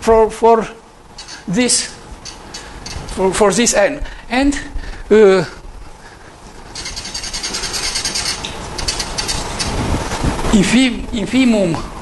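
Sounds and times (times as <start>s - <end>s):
marker squeaking on a whiteboard: 1.2s - 1.5s, 2.2s - 3.2s, 6.7s - 10.2s.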